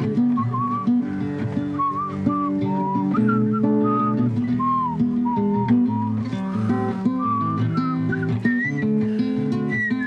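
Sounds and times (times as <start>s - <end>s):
classical guitar: 0.0s - 10.0s
person whistling a tune: 0.3s - 1.0s, 1.8s - 10.0s.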